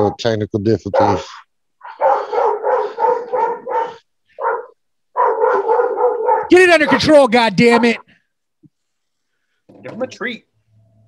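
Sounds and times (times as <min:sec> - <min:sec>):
dog barking rapidly: 0:00.9 - 0:08.0.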